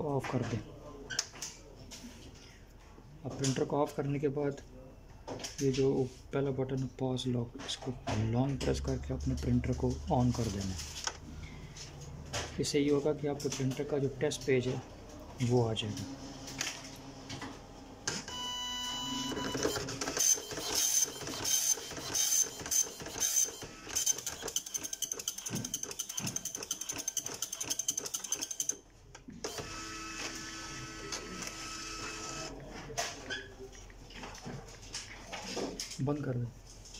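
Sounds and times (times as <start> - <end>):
printer motor whir: 18.3 - 28.8, 29.4 - 32.6
dot matrix print head buzzing: 18.4 - 28.7, 29.5 - 32.5.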